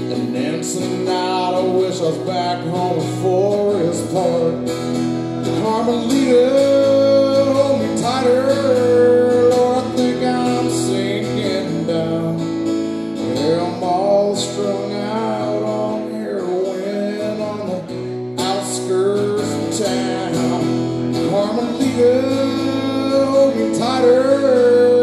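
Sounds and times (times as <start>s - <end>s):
country-rock guitar playing: 0.0s - 25.0s.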